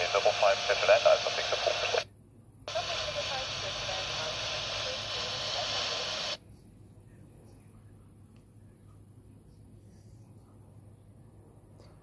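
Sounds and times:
faint unintelligible radio voice: 0:00.0 - 0:02.0
hissy radio signal: 0:00.0 - 0:02.0, 0:02.7 - 0:06.4.

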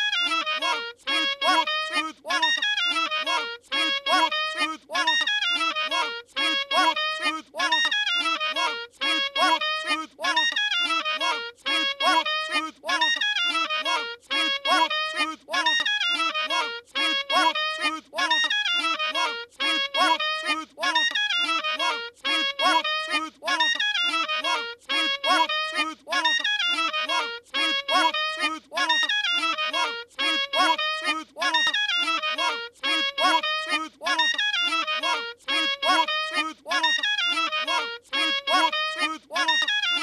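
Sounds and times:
cartoon voice-like syllables: 0:00.0 - 0:40.0
looped clarinet notes remix: 0:00.0 - 0:40.0.

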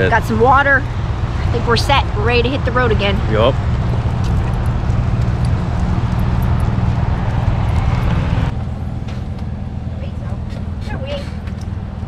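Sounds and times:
outdoor background noise: 0:00.0 - 0:12.0
vehicle engine idling: 0:00.0 - 0:12.0.

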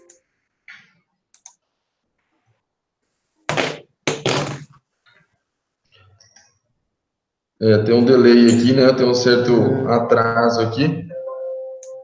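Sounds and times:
faint clicks: 0:00.0 - 0:01.6.

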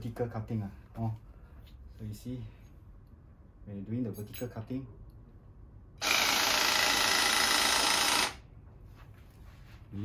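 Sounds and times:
hydraulic cable cutter whirring: 0:06.0 - 0:08.4.

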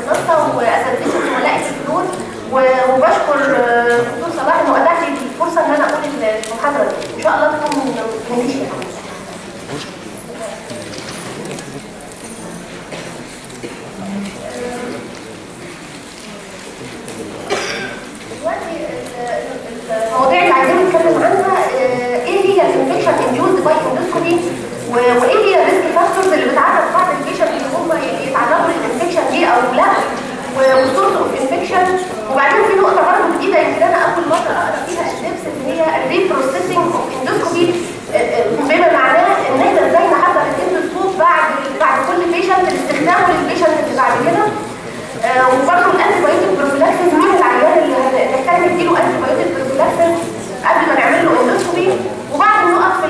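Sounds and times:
woman lecturing in a hall: 0:00.0 - 0:09.1, 0:14.3 - 0:15.0, 0:17.5 - 0:53.0
cough-like burst: 0:01.0 - 0:01.6, 0:17.4 - 0:18.2
woman speaking over sound system: 0:18.5 - 0:53.0.

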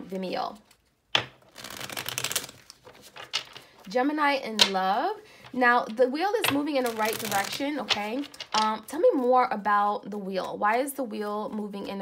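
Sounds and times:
cards being shuffled: 0:00.5 - 0:03.9, 0:06.4 - 0:08.9.

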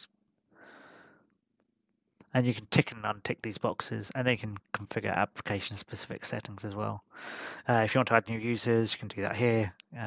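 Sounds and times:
soft breath: 0:00.5 - 0:01.3, 0:07.1 - 0:07.6.

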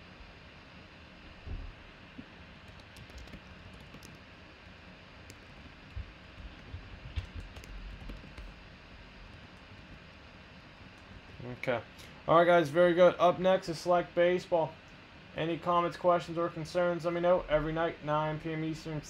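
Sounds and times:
typing on computer keyboard: 0:02.6 - 0:04.2, 0:05.3 - 0:08.6.

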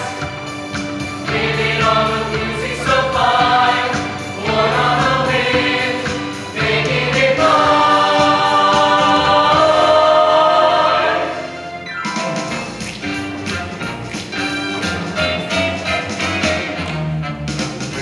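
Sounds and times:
mixed choir singing in harmony: 0:00.0 - 0:11.8.

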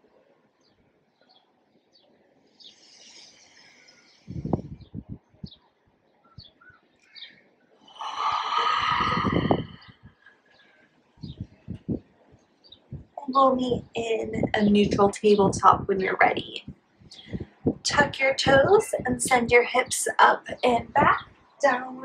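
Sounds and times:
small birds chirping: 0:00.6 - 0:17.6
soft breathing: 0:02.4 - 0:04.8, 0:07.0 - 0:11.0
rushing breath-like noise: 0:07.9 - 0:10.4.

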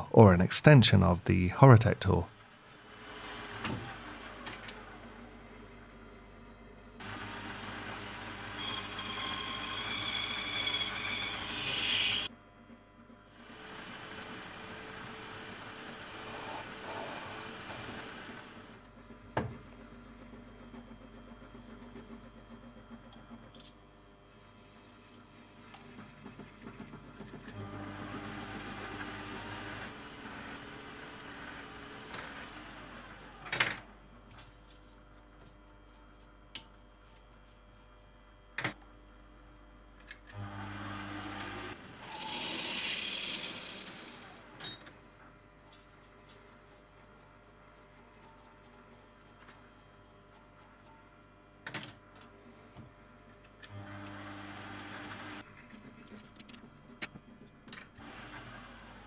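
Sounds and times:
lathe running: 0:07.0 - 0:12.3, 0:40.7 - 0:44.4
cutting tool squealing on brass: 0:08.6 - 0:12.3.

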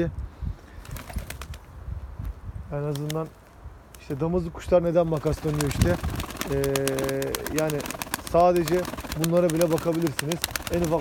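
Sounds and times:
gusty wind on microphone: 0:00.0 - 0:02.9, 0:03.6 - 0:09.2
pigeons flapping and shuffling: 0:00.8 - 0:01.6, 0:05.1 - 0:11.0.

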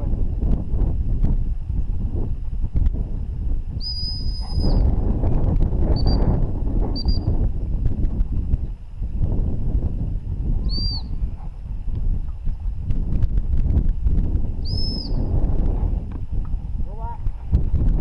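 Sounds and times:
wind rumble on microphone: 0:00.0 - 0:18.0
dog-training whistle: 0:03.8 - 0:04.8, 0:10.7 - 0:11.1.

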